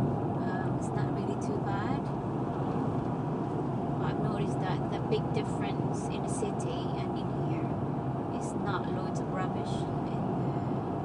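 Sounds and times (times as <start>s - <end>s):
car road and engine noise: 0.0s - 11.0s
woman talking: 0.4s - 2.1s, 4.0s - 7.8s, 8.4s - 10.8s.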